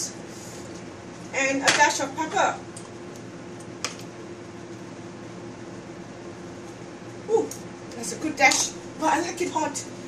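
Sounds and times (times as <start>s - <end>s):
kitchen fan hum: 0.0s - 10.0s.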